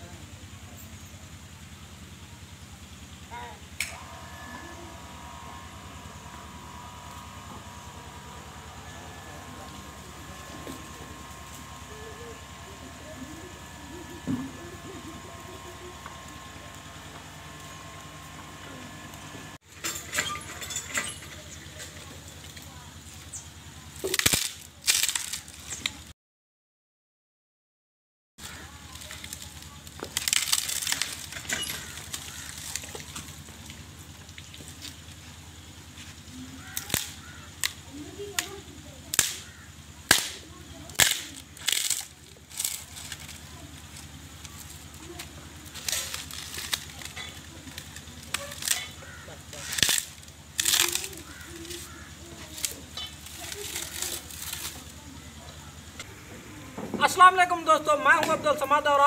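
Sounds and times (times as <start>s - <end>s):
dry stalks beaten against tree trunk: 24.0s - 26.0s, 28.5s - 33.4s, 36.7s - 54.9s
wooden stick cracking: 39.1s - 39.5s, 40.1s - 40.4s, 41.0s - 43.4s, 45.2s - 54.9s.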